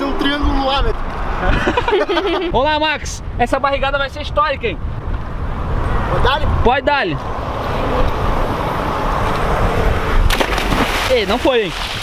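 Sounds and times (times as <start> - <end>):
wind rumble on microphone: 0.0 - 12.0
body splashing into water: 10.3 - 12.0.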